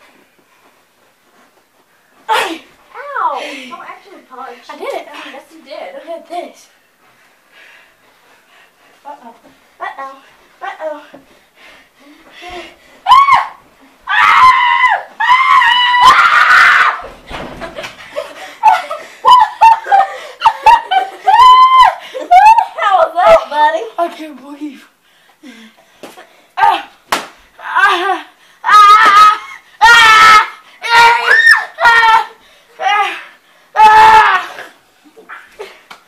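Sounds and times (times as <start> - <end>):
children shrieking with laughter: 13.1 - 17.1, 18.6 - 23.4, 27.6 - 33.2, 33.8 - 34.7.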